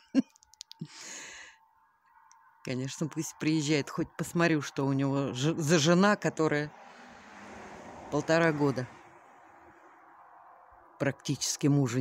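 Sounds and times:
breathy sigh: 0.8 - 1.6.

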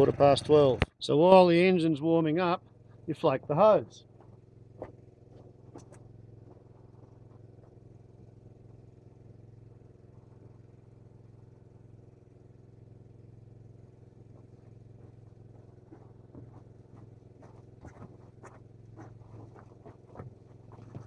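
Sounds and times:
small petrol engine running: 0.0 - 21.0.

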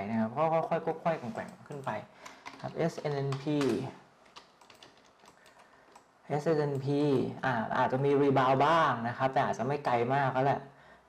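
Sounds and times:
man speaking: 0.0 - 4.0
keyboard keystrokes: 1.7 - 6.1.

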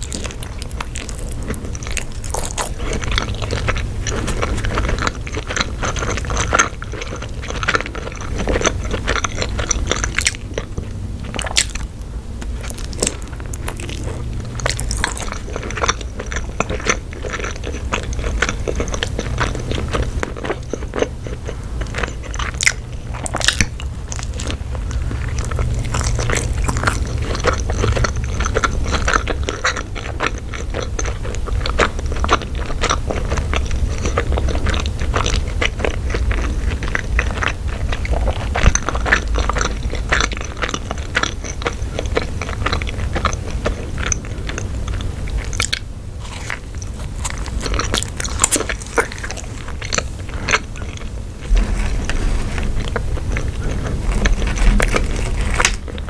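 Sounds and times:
chewing and biting food: 0.0 - 56.0.

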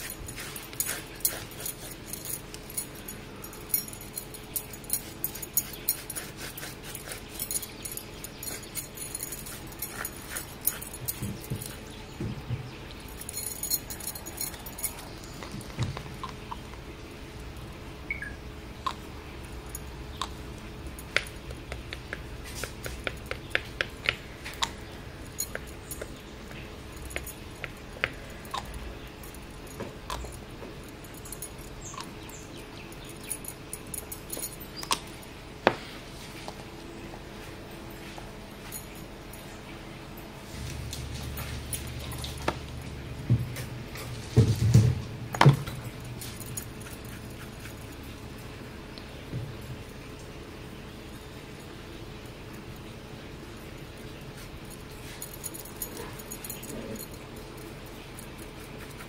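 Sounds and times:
metal bangles clinking: 0.0 - 12.2, 12.8 - 16.6, 24.4 - 35.3, 45.6 - 48.6, 53.6 - 59.0.

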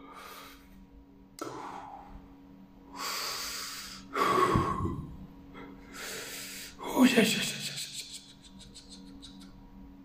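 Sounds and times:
man breathing heavily into microphone: 1.4 - 5.0, 5.6 - 6.8.

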